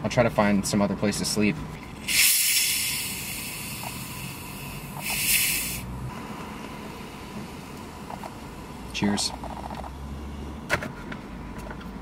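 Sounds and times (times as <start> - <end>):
soda bottle hissing: 2.0 - 5.8.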